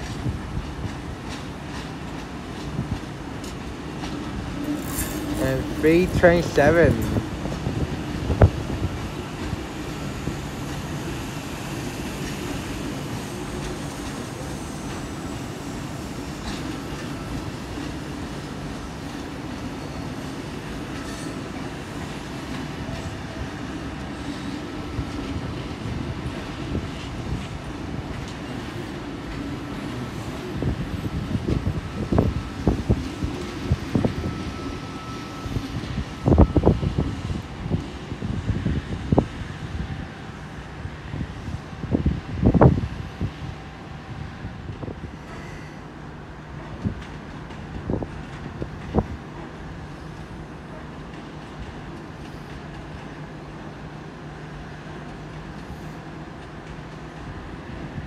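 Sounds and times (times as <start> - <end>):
train rumble: 0.0 - 58.0.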